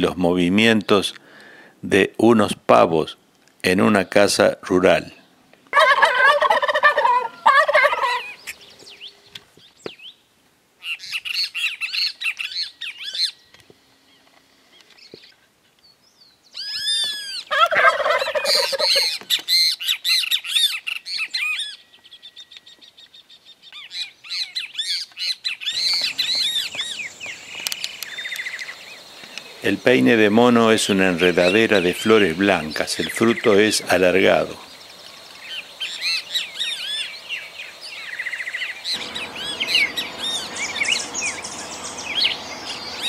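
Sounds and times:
turkeys gobbling: 5.7 - 8.6, 16.7 - 21.8, 25.7 - 34.7, 38.2 - 43.0.

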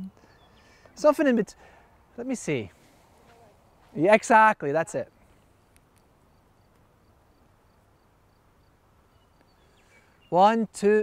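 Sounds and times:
faint high regular tick: 5.7 - 6.1, 9.4 - 9.6.

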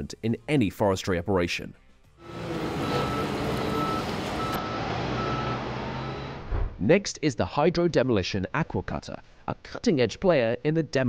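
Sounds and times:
machine engine running: 2.2 - 6.4
reversing alarm beeping: 2.2 - 6.5.

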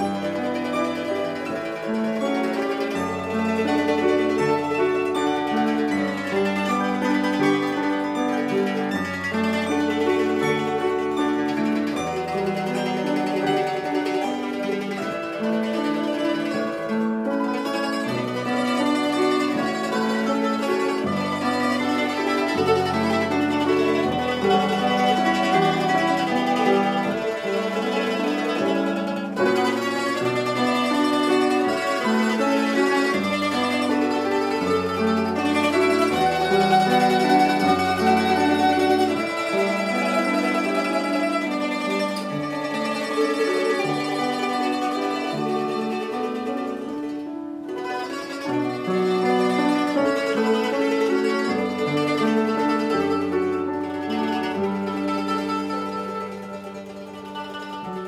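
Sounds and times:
mandolin ensemble: 0.0 - 58.0.

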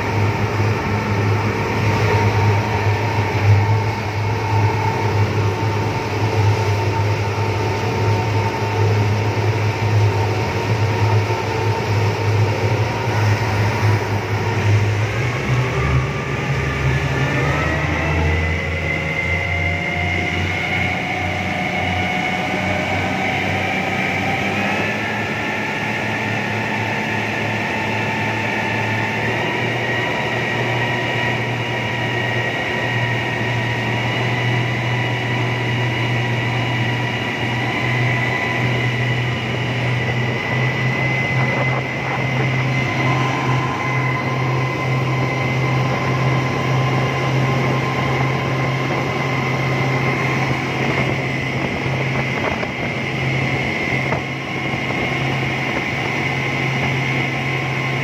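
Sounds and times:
churning wake rushing: 0.0 - 58.0
outboard motors droning: 0.0 - 58.0.

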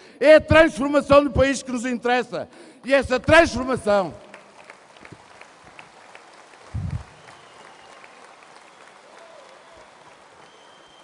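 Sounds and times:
distant crowd applauding: 4.2 - 11.0
short low thump: 6.8 - 7.1.

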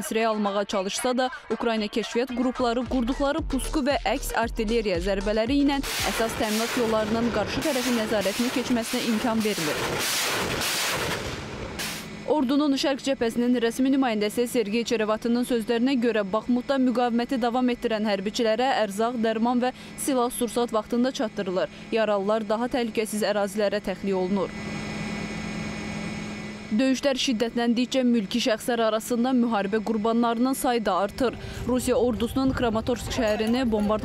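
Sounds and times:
voice: 0.0 - 9.8, 12.3 - 24.5, 26.7 - 34.0
engine running with low hum: 2.8 - 34.0
rockets launching rushing noise: 5.8 - 12.1.

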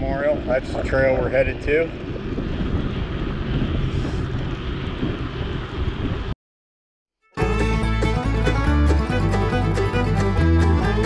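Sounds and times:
wind on microphone: 0.0 - 6.4
bicycle tyres on asphalt: 1.9 - 6.3.

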